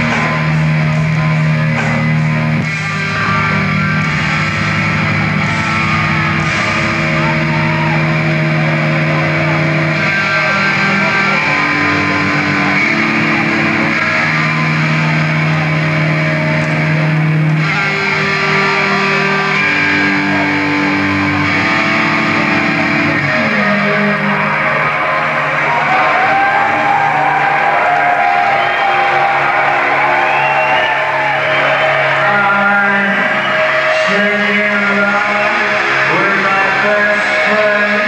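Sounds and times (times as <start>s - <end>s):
wavering higher guitar tones: 0.0s - 32.3s
rock band electric guitars and bass: 0.0s - 38.0s.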